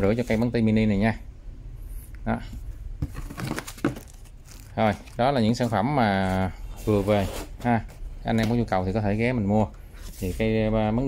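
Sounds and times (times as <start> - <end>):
soft paper rustles: 3.2 - 7.9, 10.0 - 10.7.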